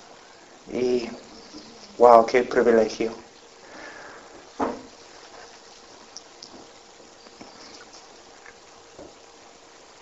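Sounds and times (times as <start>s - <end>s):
faint ticks: 6.1s - 6.6s.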